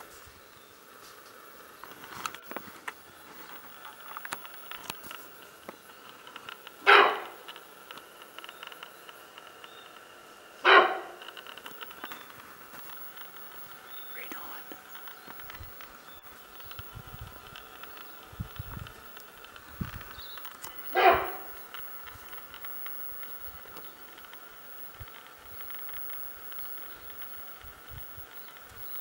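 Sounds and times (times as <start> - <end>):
deer barking: 6.8 - 7.5, 10.6 - 11.3, 20.8 - 21.6.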